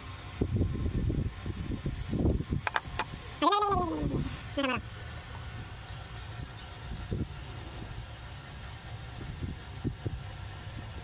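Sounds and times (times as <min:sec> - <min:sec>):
low mechanical hum: 0:00.0 - 0:11.0.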